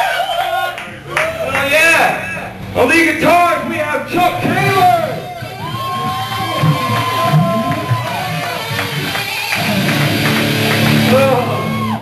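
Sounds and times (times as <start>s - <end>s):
distorted electric guitar solo: 6.6s - 12.0s.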